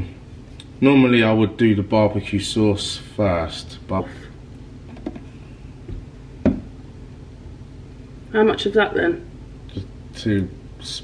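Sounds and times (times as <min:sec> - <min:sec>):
low room hum: 0:00.0 - 0:11.0
short knock: 0:05.9 - 0:06.7.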